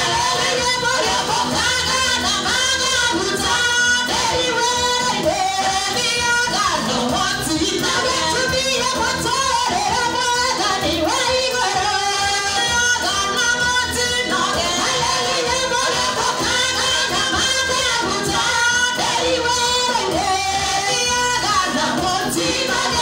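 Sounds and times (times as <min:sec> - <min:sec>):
musical accompaniment: 0:00.0 - 0:23.0
woman singing into microphone: 0:00.0 - 0:23.0.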